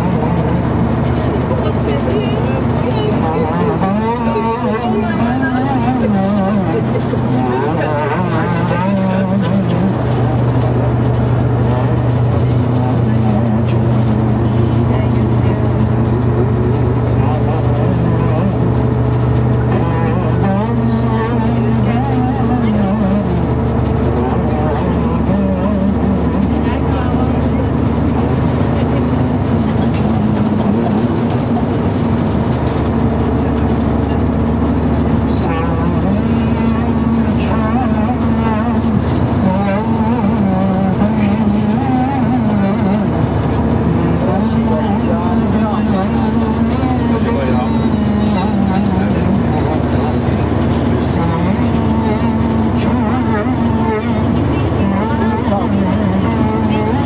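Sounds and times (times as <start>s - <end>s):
bus engine drone: 0.0s - 57.0s
road noise: 0.0s - 57.0s
man speaking over pa: 1.7s - 14.4s, 43.8s - 57.0s.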